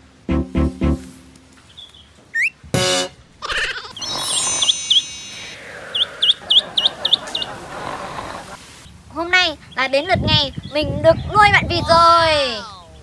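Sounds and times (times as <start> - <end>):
sound effect burst: 0.0 - 1.4, 2.8 - 3.2
duckling peeping: 0.0 - 7.6.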